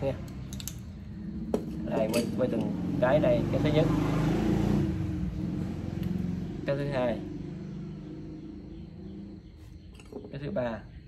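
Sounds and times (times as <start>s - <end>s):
vehicle engine humming: 0.0s - 10.5s.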